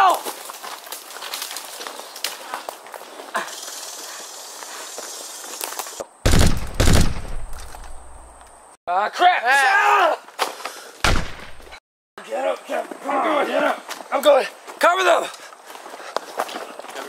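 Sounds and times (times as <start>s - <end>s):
footsteps through dry brush: 0.0s - 6.0s, 13.8s - 17.0s
automatic gunfire bursts: 6.3s - 7.4s.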